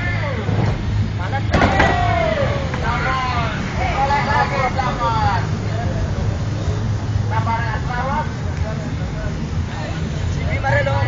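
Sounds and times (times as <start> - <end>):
low vehicle rumble: 0.0 - 11.0.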